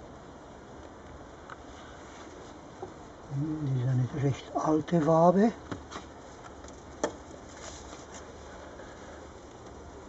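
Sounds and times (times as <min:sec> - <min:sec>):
faint rustles: 0:00.9 - 0:10.0.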